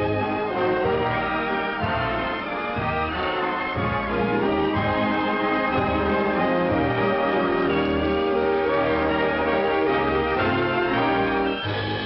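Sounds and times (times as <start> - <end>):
orchestral music: 0.0 - 12.0.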